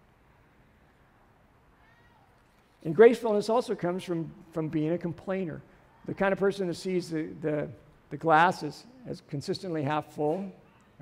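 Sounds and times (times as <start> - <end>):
man speaking: 2.8 - 10.6.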